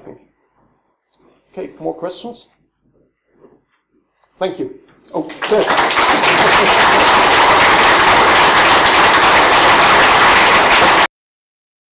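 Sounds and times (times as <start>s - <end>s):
audience applauding: 5.3s - 11.1s.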